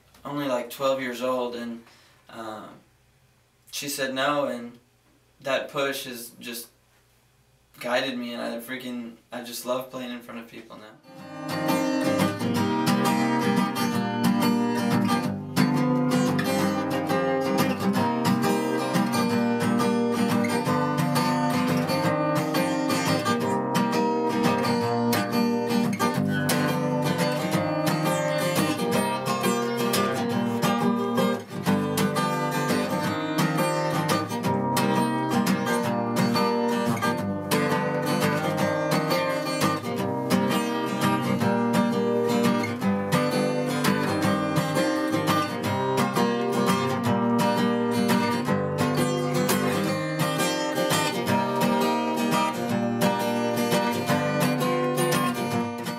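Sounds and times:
acoustic guitar strummed: 7.9 - 55.9.

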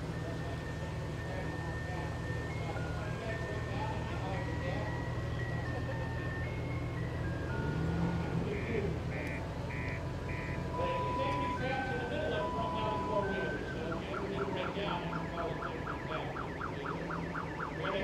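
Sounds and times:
engines rumbling slowly: 0.0 - 18.0
simple electronic tune: 7.6 - 15.6
short beeps: 8.5 - 13.8.

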